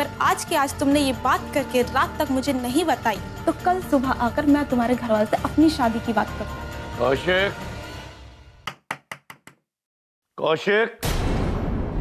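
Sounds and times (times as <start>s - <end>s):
background music: 0.0s - 8.7s.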